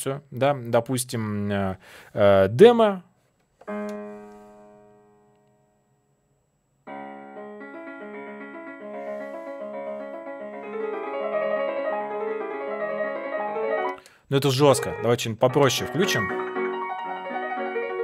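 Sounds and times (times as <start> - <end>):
fast piano piece: 6.9 - 18.0
single piano tone ringing: 14.6 - 18.0.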